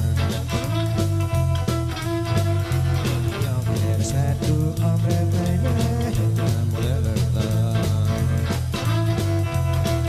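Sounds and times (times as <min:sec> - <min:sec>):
bass line: 0:00.0 - 0:10.0
electric guitar: 0:00.0 - 0:10.0
steady drum beat: 0:00.0 - 0:10.0.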